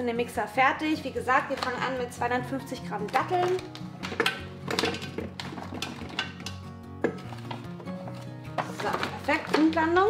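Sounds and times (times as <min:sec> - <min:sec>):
background music: 0:00.0 - 0:10.0
dates clinking into steel bowl: 0:01.2 - 0:02.0, 0:02.9 - 0:10.0.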